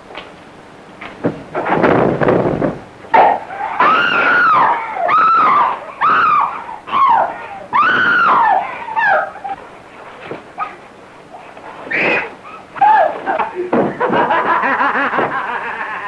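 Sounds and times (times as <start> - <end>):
high wailing cries: 3.2 - 9.6, 11.9 - 13.4.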